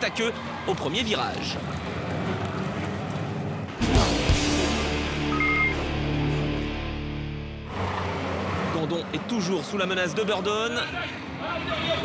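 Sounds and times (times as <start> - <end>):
race cars on track: 0.0 - 4.4, 5.3 - 12.0.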